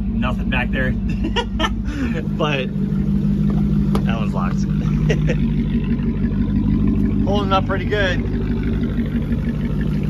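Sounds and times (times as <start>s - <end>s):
vehicle engine idling: 0.0s - 10.0s.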